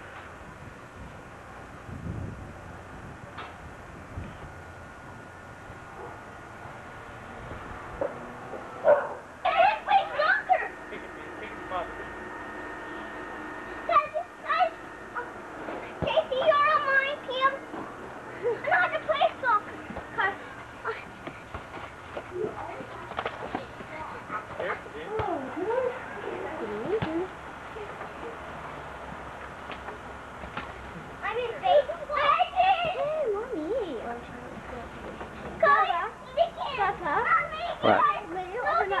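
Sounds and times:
children calling and shouting: 0:08.8 - 0:28.5, 0:31.2 - 0:39.0.

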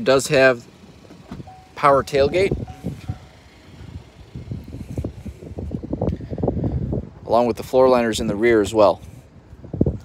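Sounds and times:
low wind rumble: 0:00.0 - 0:10.0.

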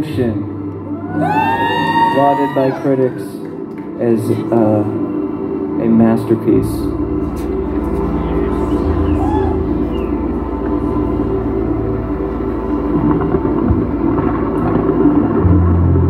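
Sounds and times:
electric guitar drone: 0:00.0 - 0:16.0
low hum: 0:04.4 - 0:16.0
low tone: 0:04.9 - 0:16.0.

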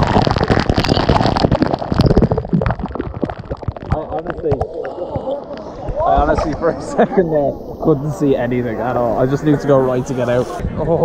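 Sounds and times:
water splashing: 0:00.0 - 0:10.6.

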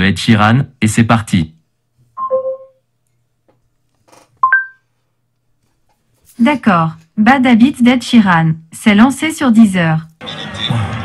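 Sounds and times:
smart speaker two-note chimes: 0:02.2 - 0:02.8.

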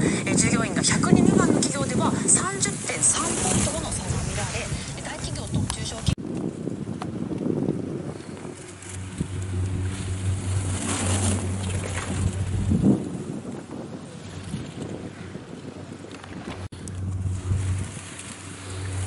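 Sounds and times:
wind buffeting microphone: 0:00.0 - 0:19.0
low machine hum: 0:07.8 - 0:13.4, 0:16.7 - 0:19.0.

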